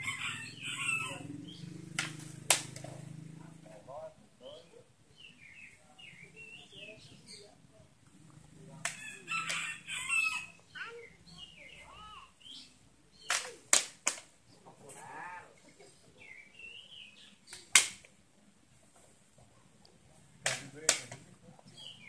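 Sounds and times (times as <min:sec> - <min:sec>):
rooster crowing: 0:00.0 - 0:01.4, 0:09.0 - 0:10.6
chickens clucking: 0:07.0 - 0:11.8.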